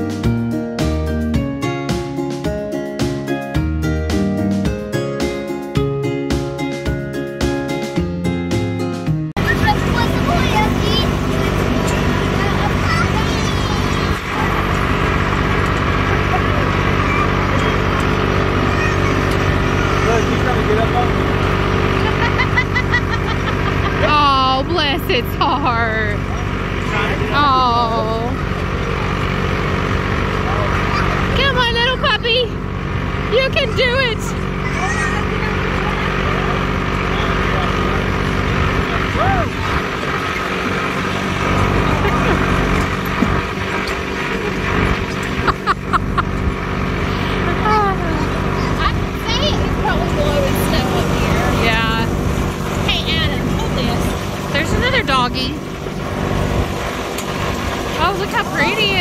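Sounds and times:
vehicle engine drone: 0:09.3 - 0:59.0
people talking: 0:09.4 - 0:14.9, 0:15.9 - 0:21.4, 0:22.0 - 0:29.3, 0:30.4 - 0:32.6, 0:33.3 - 0:39.9, 0:47.1 - 0:52.2, 0:52.8 - 0:55.6, 0:58.0 - 0:59.0
wagon rumbling: 0:09.4 - 0:59.0.

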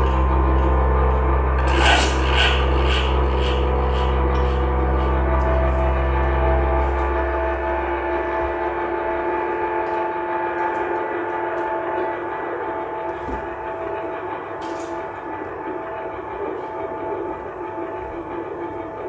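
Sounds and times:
sustained drone chord: 0:00.0 - 0:19.0.

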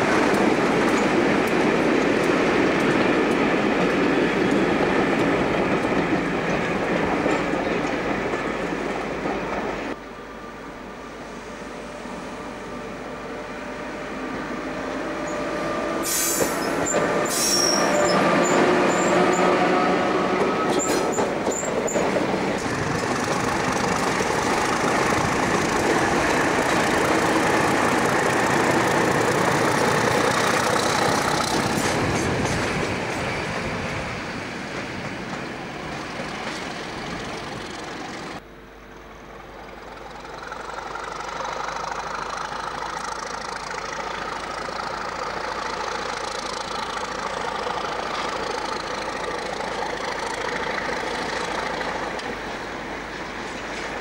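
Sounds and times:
diesel locomotive passing: 0:00.0 - 0:54.0
electric locomotive passing: 0:00.0 - 0:54.0.

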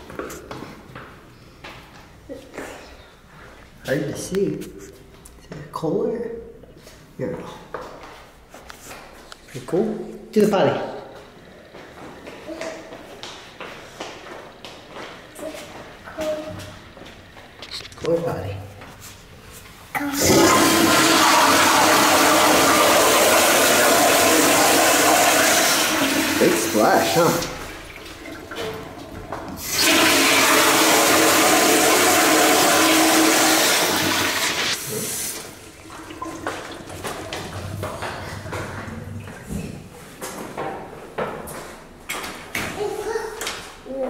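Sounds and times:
toilet flushing water rush: 0:20.0 - 0:39.5.

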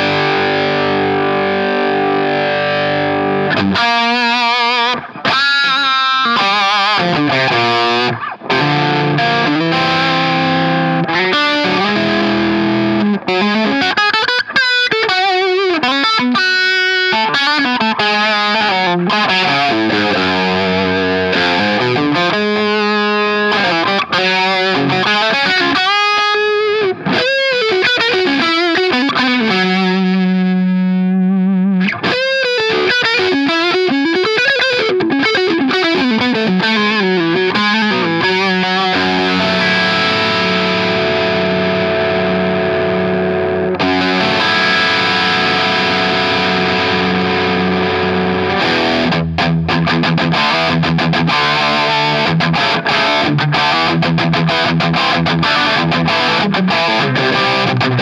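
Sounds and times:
overdriven electric guitar lead: 0:00.0 - 0:58.0.

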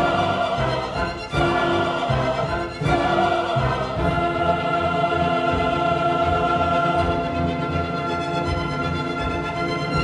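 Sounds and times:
orchestra and chorus chords: 0:00.0 - 0:10.0.

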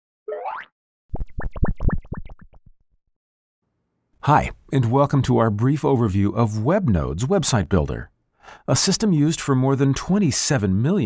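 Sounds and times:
bubbly plops rising in pitch: 0:00.3 - 0:02.7.

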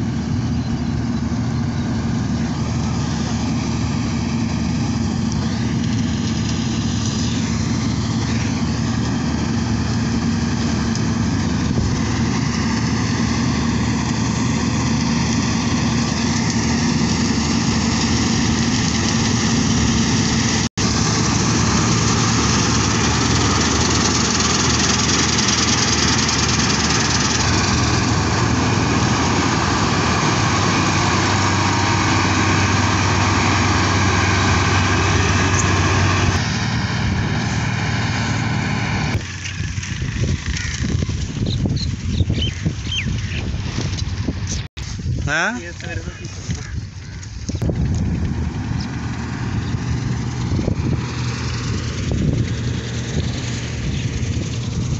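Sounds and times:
combine harvester running: 0:00.0 - 0:54.9.

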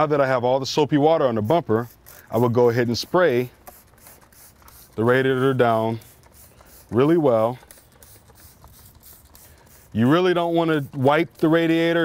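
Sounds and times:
spray bottle spritzing: 0:01.4 - 0:12.0.

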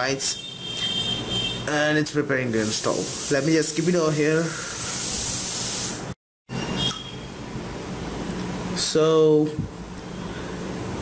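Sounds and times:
room hiss: 0:02.4 - 0:06.2.

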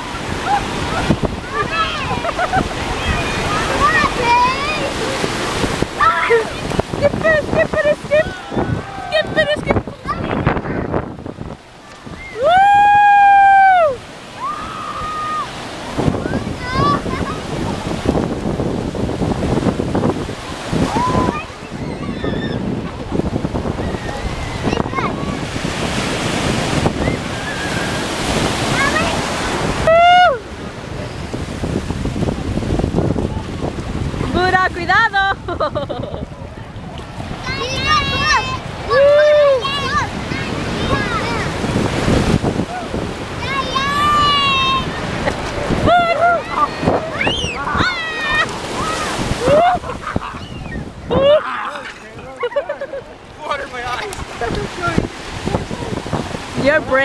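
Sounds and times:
ocean surf washing: 0:00.0 - 0:57.0
people's voices playing in water: 0:00.0 - 0:57.0
wind on microphone: 0:00.0 - 0:57.0
high-pitched shout: 0:43.4 - 0:44.9.

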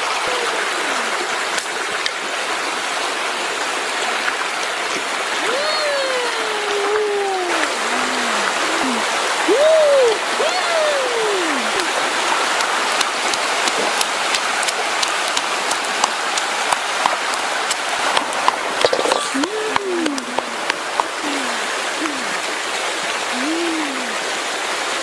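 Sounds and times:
low calls rising and falling: 0:05.4 - 0:12.3.

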